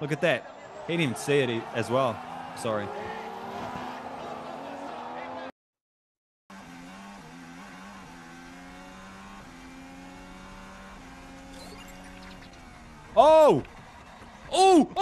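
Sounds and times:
race car and track noise: 0.0s - 5.5s, 6.5s - 14.6s
racing car engine with gear changes: 0.4s - 5.5s, 6.5s - 14.5s.

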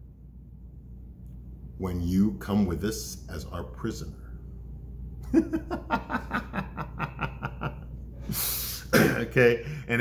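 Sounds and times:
man snickering: 5.2s - 9.2s.

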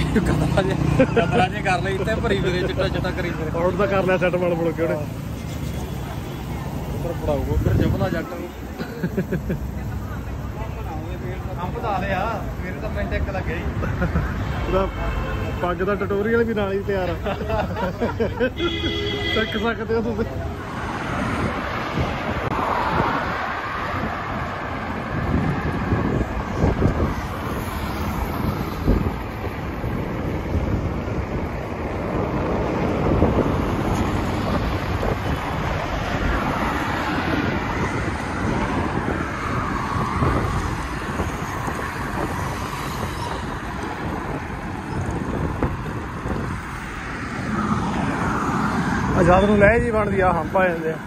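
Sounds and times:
wind rushing over microphone: 0.0s - 8.4s, 19.8s - 51.0s
highway traffic: 0.0s - 51.0s.

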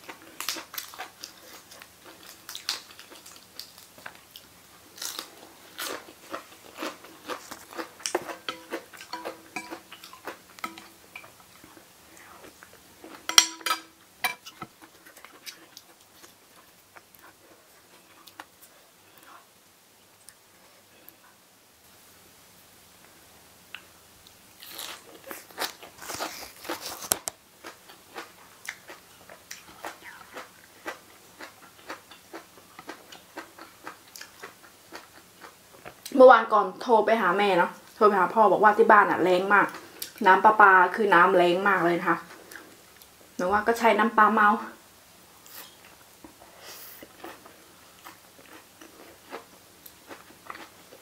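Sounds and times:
chewing crisp lettuce: 0.0s - 10.6s, 24.6s - 36.2s, 46.8s - 51.0s
crunching lettuce: 4.9s - 8.4s, 24.6s - 27.3s.

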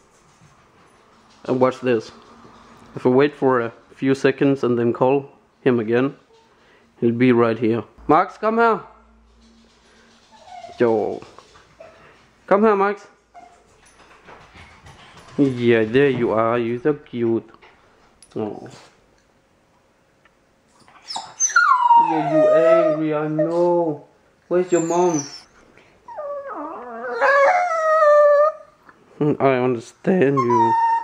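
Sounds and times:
puppy whimpering: 10.2s - 11.2s, 20.8s - 25.5s, 26.1s - 28.8s, 30.3s - 31.0s.

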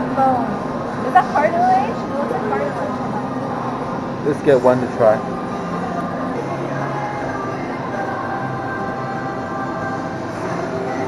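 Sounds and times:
restaurant background din: 0.0s - 11.0s.

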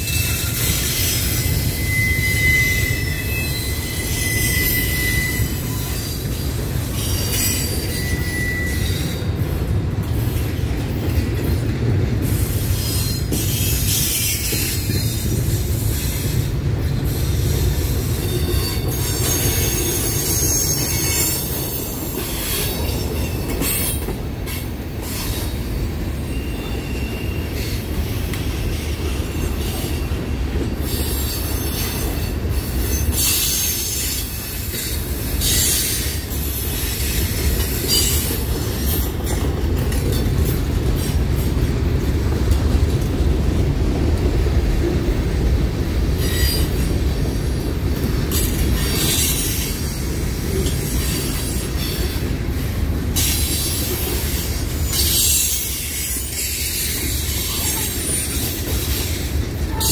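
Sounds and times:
steel wheels rumbling on rail: 0.0s - 59.9s
train cars clanking and rattling: 0.0s - 59.9s
thin wheel squeals: 0.1s - 9.2s, 18.2s - 22.5s.

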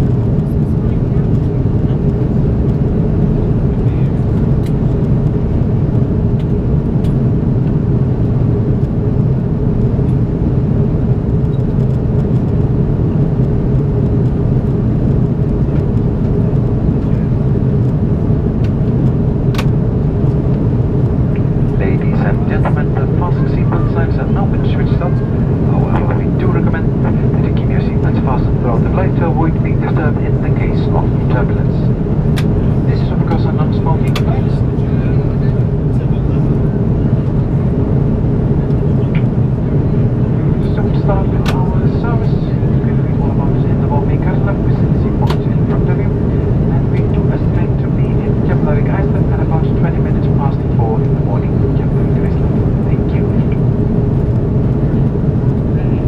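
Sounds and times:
airplane cabin engine noise: 0.0s - 56.0s
person speaking: 21.7s - 31.9s.

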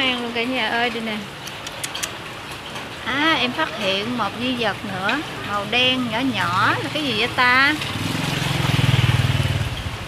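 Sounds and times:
motorbike engine passing by: 5.2s - 10.0s.

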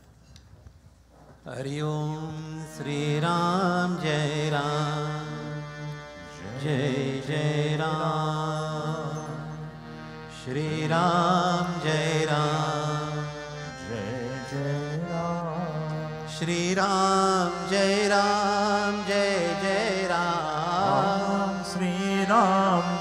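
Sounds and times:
man chanting into a microphone: 16.5s - 23.0s.

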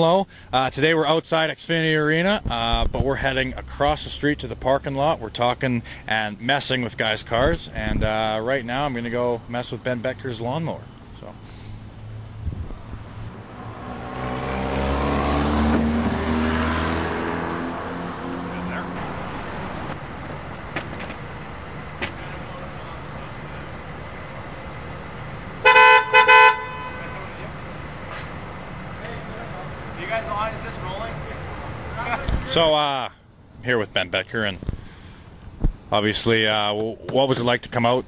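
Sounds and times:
vehicle driving past: 11.5s - 32.6s
car horn toots: 25.6s - 27.4s.

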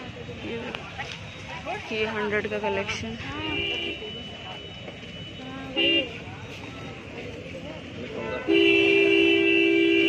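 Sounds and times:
vehicle horn toot: 3.3s - 4.4s, 5.3s - 6.3s, 8.1s - 10.0s
long vehicle horn blast: 3.4s - 4.2s, 8.1s - 10.0s.

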